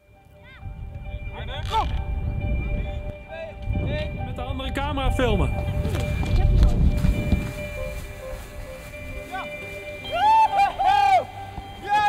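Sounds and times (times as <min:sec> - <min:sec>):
faint steady music: 0:00.0 - 0:12.0
low rumble: 0:00.7 - 0:09.3.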